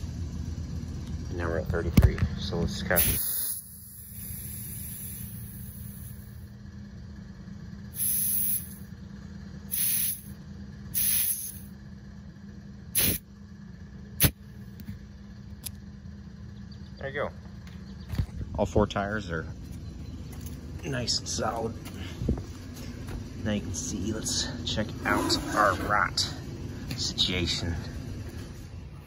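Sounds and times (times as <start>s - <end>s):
compressed air hissing: 3.0s - 6.4s, 7.9s - 8.8s, 9.7s - 11.7s, 12.9s - 13.2s.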